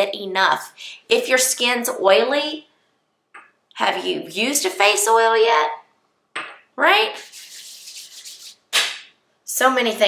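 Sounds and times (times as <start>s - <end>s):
hands rubbing together: 7.2s - 9.0s.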